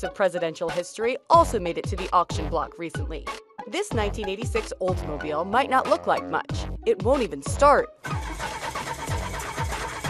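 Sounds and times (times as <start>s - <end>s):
starter cranking engine: 8.0s - 10.0s.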